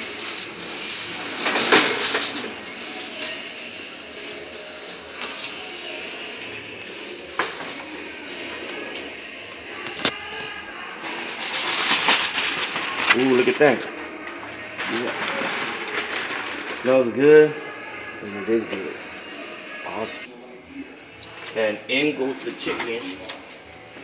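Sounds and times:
foil pan being handled: 0.0s - 2.6s, 11.0s - 16.9s
aluminium foil crinkling: 10.0s - 17.2s.

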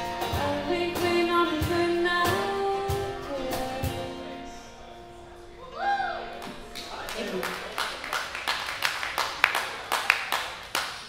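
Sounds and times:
small audience clapping: 6.4s - 11.0s.

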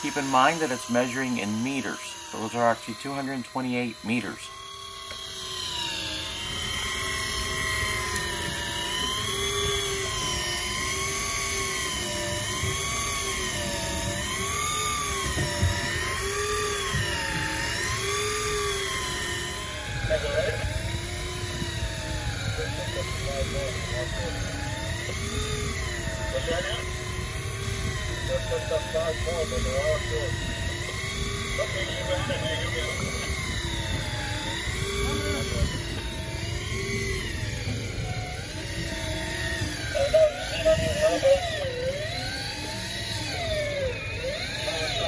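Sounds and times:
fishing reel motor whining: 0.0s - 45.0s.

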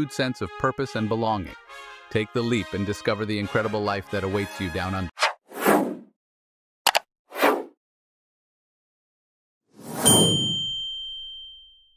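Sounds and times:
bright bell ding: 10.0s - 11.9s.

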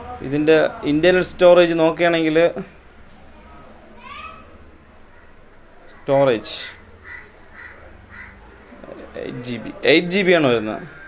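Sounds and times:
crow cawing: 4.0s - 9.0s.

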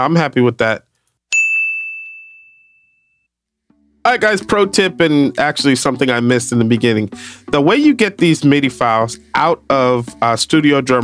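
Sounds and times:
bright chime ding: 1.4s - 3.3s.

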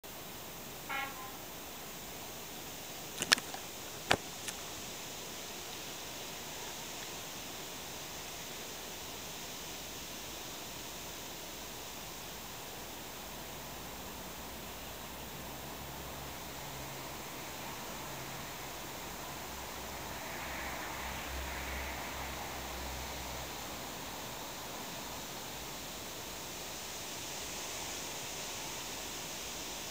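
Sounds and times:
outdoor background hiss: 0.0s - 29.9s.

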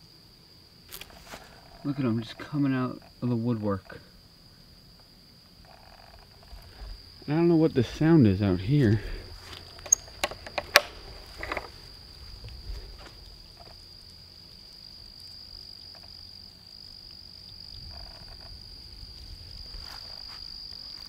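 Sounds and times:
insects droning: 0.0s - 21.0s
sharp clicks: 9.8s - 11.7s.

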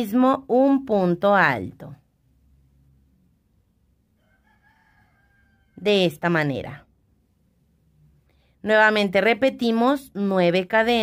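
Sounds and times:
woman speaking: 0.0s - 2.1s, 5.8s - 6.9s, 8.6s - 11.0s
distant rooster crowing: 4.1s - 6.2s.

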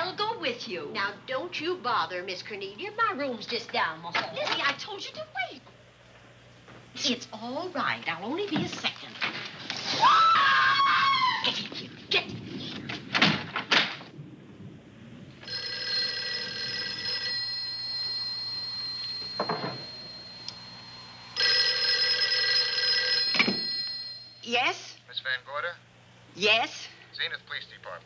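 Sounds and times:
woman crying out: 10.0s - 11.7s
telephone bell ringing: 15.4s - 24.5s.

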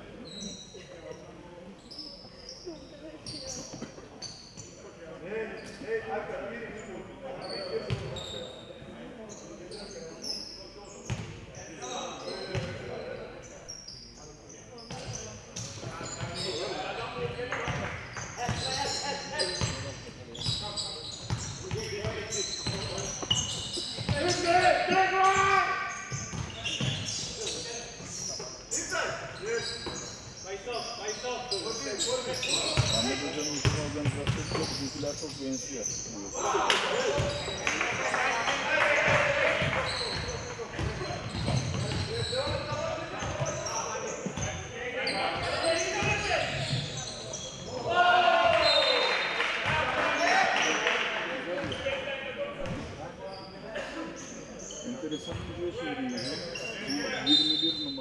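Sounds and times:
shoe squeaks: 0.2s - 4.8s, 6.8s - 36.4s, 39.0s - 47.8s, 52.8s - 58.0s
basketball bouncing on court: 11.1s - 11.4s, 21.2s - 23.4s, 26.1s - 27.0s, 33.6s - 34.7s, 39.0s - 43.6s, 55.3s - 55.5s
loud long shout: 47.9s - 49.0s.

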